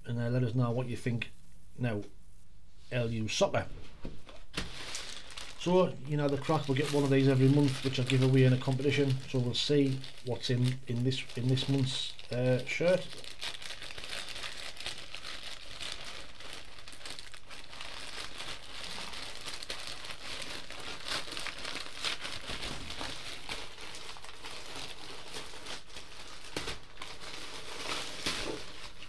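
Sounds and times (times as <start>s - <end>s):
packaging crinkling and rustling: 4.3s - 29.0s
packaging tearing: 4.6s - 29.0s.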